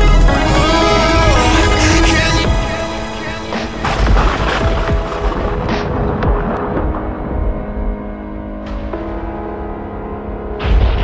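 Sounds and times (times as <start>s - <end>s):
held synth note: 0.0s - 4.1s.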